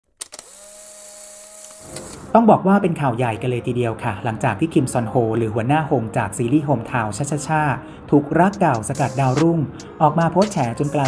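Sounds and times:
hiss: 0.5 - 2.2.

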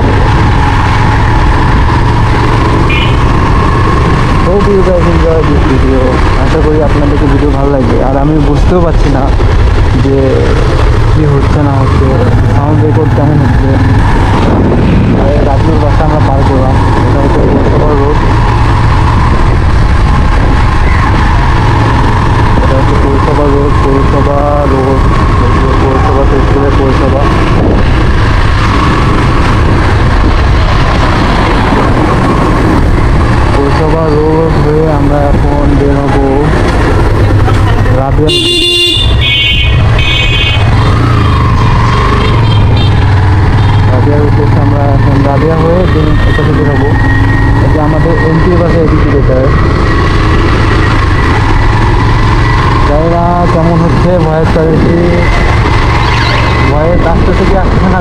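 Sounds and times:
wind rush: 0.0 - 4.6, 12.2 - 23.3, 27.0 - 37.9
motorcycle engine running: 0.0 - 58.0
vehicle horn beep: 2.9 - 3.3, 38.3 - 40.6, 42.2 - 43.0, 43.6 - 43.9.

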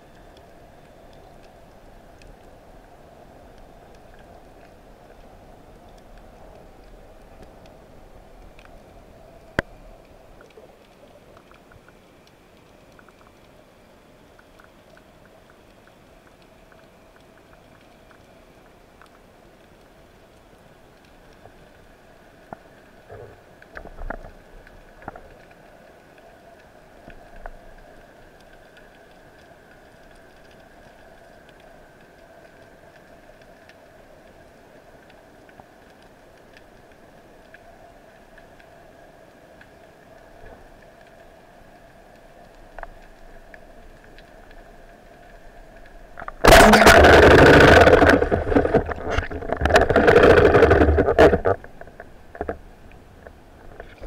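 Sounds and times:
distant boat engine underwater: 39.9 - 54.0
small clicks: 42.1 - 54.0
water and bubbles rushing: 42.8 - 54.0.

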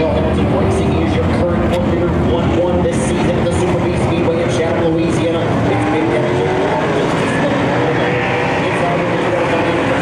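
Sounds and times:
race car engines revving: 0.0 - 10.0.

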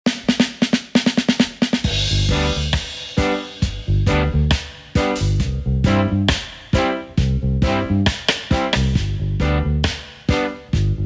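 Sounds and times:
drum fill on snare and toms: 0.0 - 11.0
band background music: 0.1 - 11.0.

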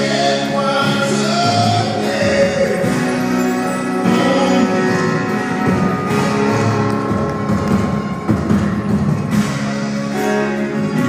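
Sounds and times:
acoustic band playing chords: 0.0 - 11.0.

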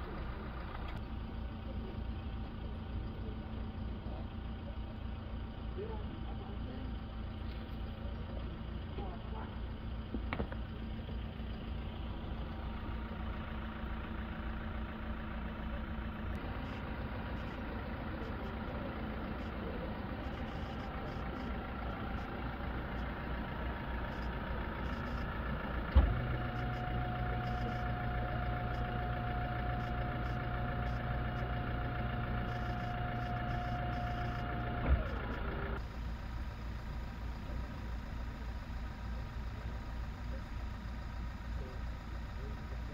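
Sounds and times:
car engine idling: 0.0 - 42.9
hum: 0.0 - 42.9.

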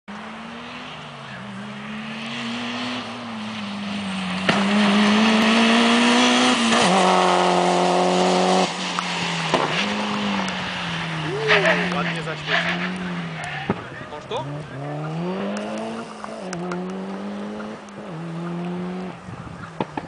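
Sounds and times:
car engine passing by: 0.2 - 20.0.

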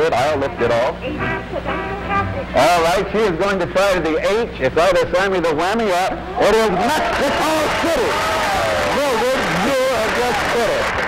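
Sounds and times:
excited voices: 6.0 - 11.0.

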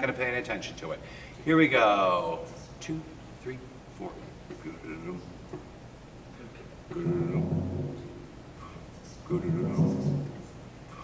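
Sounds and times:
man speaking: 0.0 - 5.4, 6.4 - 11.0
drum rumble: 6.9 - 8.5, 9.3 - 10.5.

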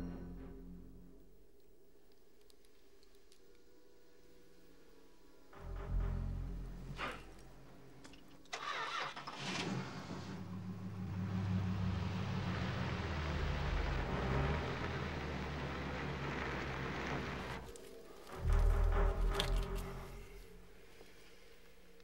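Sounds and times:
car engine starting and idling: 5.8 - 20.5.

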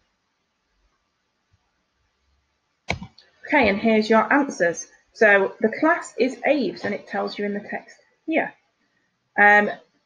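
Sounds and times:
sharp click: 2.9 - 3.2.

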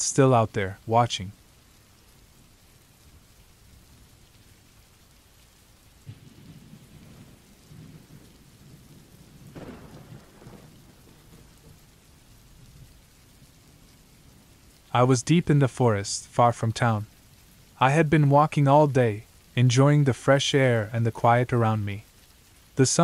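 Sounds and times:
steady rainfall: 0.0 - 23.0
low rumble of thunder: 6.0 - 14.9.

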